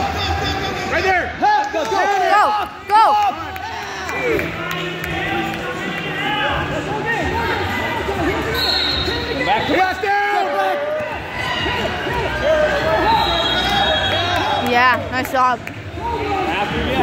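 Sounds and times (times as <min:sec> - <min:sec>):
many voices shouting: 0:01.8 - 0:14.7.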